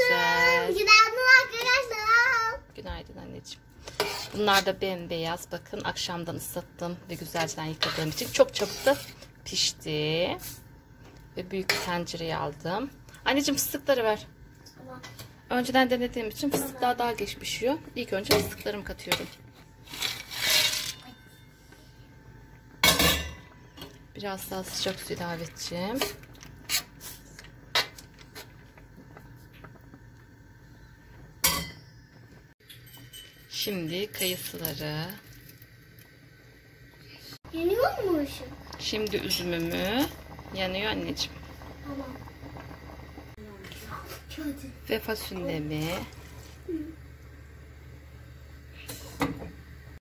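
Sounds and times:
pots and utensils clattering: 7.3s - 9.3s, 18.1s - 21.5s, 22.8s - 24.0s, 31.4s - 31.9s, 32.6s - 34.5s
beans sliding into a pot: 19.8s - 20.9s.

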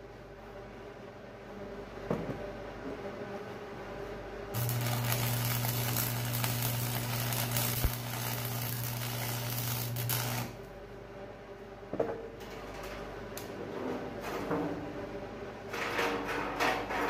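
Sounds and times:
welder hum: 4.5s - 10.8s
arc welding crackle: 4.6s - 10.7s.

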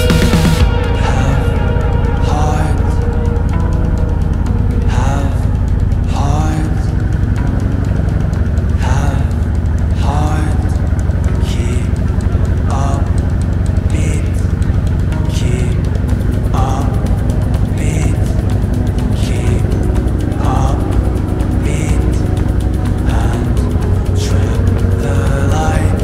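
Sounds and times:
background music with beat: 0.0s - 26.0s
boat engine rumbling: 0.0s - 26.0s.

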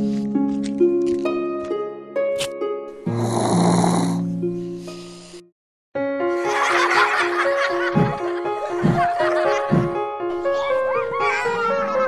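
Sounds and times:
background music with held notes: 0.0s - 12.0s
cartoon snore: 3.1s - 4.3s.

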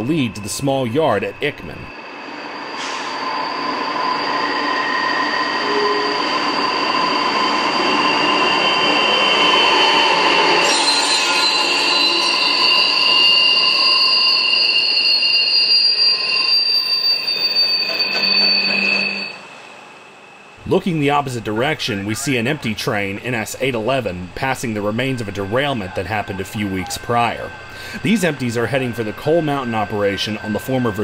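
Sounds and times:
diesel locomotives passing: 0.0s - 31.0s
rumble of rail cars: 0.0s - 31.0s
train wheels squealing: 0.0s - 31.0s.

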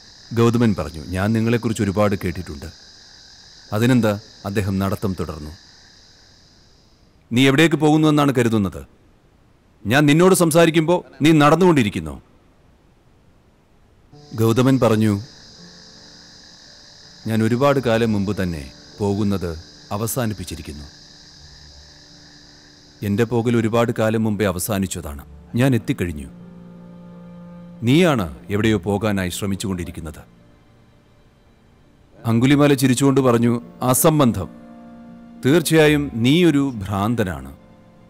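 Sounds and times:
crickets chirring: 0.0s - 38.0s
man narrating: 0.3s - 2.7s, 3.7s - 5.6s, 7.3s - 8.9s, 9.8s - 12.2s, 14.3s - 15.4s, 17.3s - 20.9s, 23.0s - 26.4s, 27.8s - 30.3s, 32.2s - 34.6s, 35.4s - 37.6s
man speaking: 0.3s - 2.7s, 3.7s - 5.6s, 9.8s - 12.2s, 14.3s - 15.3s, 17.3s - 20.9s, 23.0s - 26.4s, 27.8s - 30.3s, 32.2s - 34.6s, 35.4s - 37.6s.

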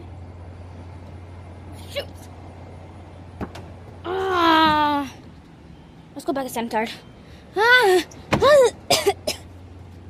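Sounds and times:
low outdoor hum: 0.0s - 10.0s.

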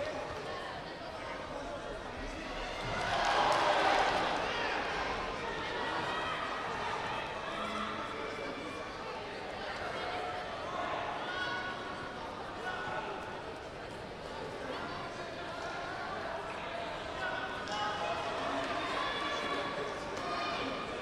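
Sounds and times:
voices echoing in sports hall: 0.0s - 21.0s.

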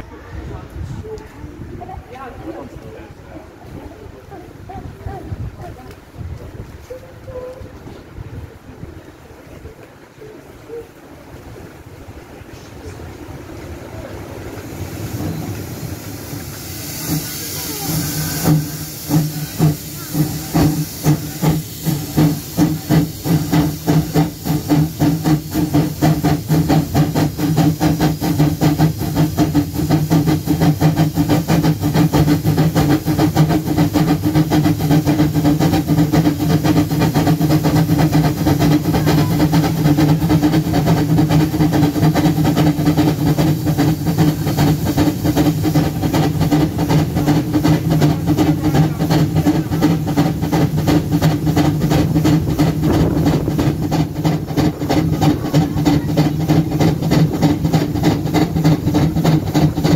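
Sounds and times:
steam locomotive exhaust chuffs: 1.8s - 59.9s
steam hissing: 10.2s - 59.9s.

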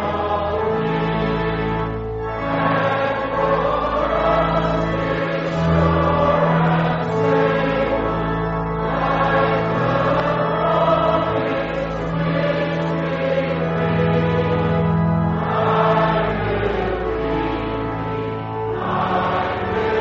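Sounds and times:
group singing a hymn: 0.0s - 20.0s.

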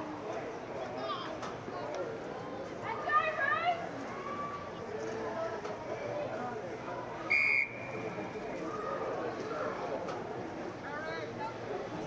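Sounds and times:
murmur of voices: 0.0s - 12.0s
short sharp whistle blast: 7.3s - 8.0s.

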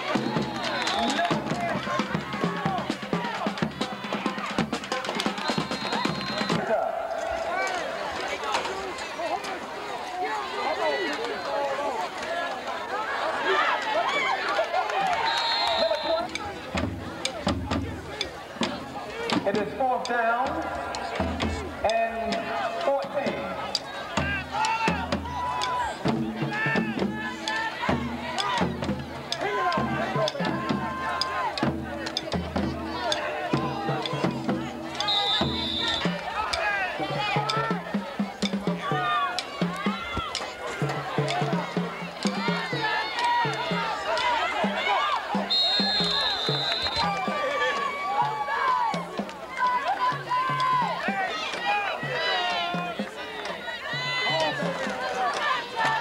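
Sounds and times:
band drums and horns playing: 0.0s - 7.8s, 15.1s - 56.0s
football crowd talking and calling out: 0.0s - 56.0s
referee's whistle: 0.1s - 1.4s, 5.2s - 6.7s, 15.1s - 16.4s, 34.9s - 36.6s, 45.4s - 47.2s.

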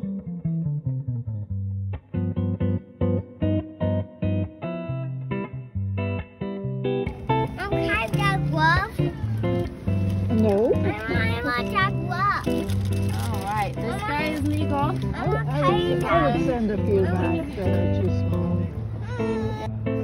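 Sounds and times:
picked acoustic guitar: 0.0s - 20.0s
child talking: 7.4s - 9.6s, 10.7s - 16.3s
woman talking: 10.3s - 11.3s, 13.1s - 18.8s.

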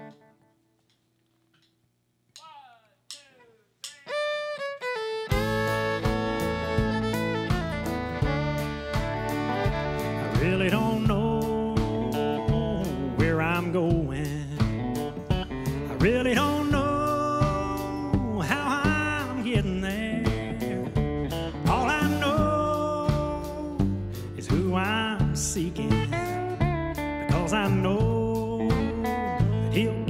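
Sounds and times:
country band playing: 4.1s - 30.0s.

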